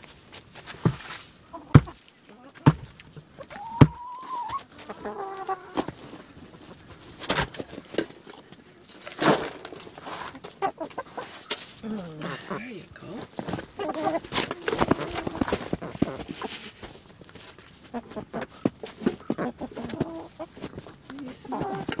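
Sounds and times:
feet and beaks tapping in straw: 0.0 - 22.0
hens clucking: 0.8 - 22.0.

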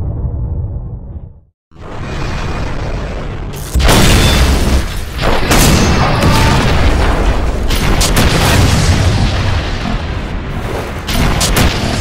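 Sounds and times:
explosion booms: 1.9 - 12.0.

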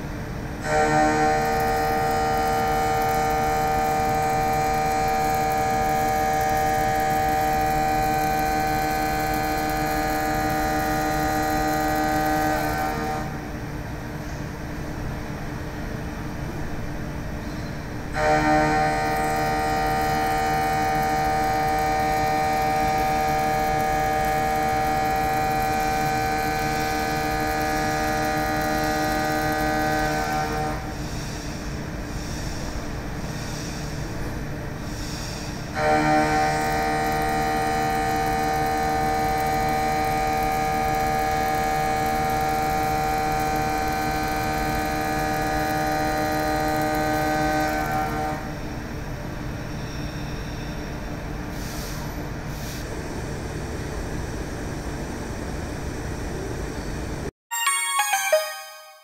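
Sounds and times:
low machine hum: 0.0 - 32.2.

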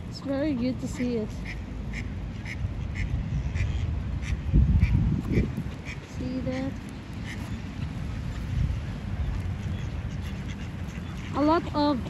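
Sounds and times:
steady low rumble: 0.0 - 12.0
ducks quacking faintly: 0.1 - 12.0.

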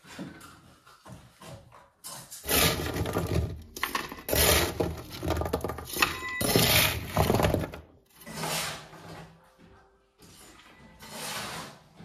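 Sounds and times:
scraping of brick rubble: 2.1 - 9.4, 10.8 - 12.0.

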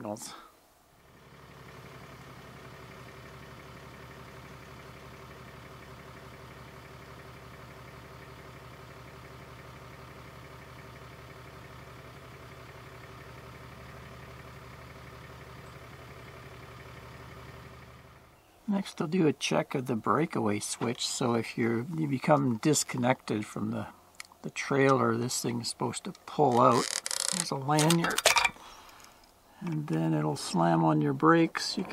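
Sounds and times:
truck engine idling: 0.9 - 27.8.

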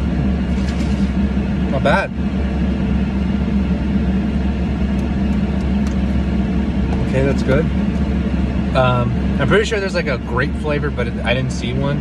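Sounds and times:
car engine idling: 0.0 - 12.0.

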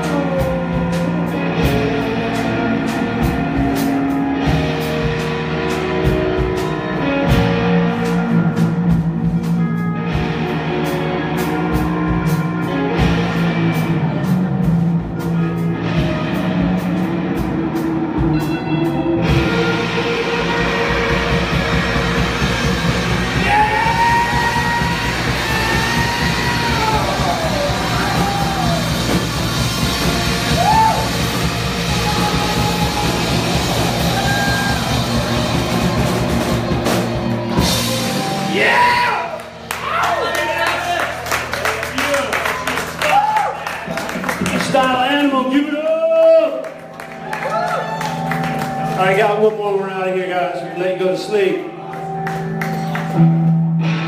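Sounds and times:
live rock band playing: 0.0 - 54.0
long gliding high notes: 15.4 - 39.0.

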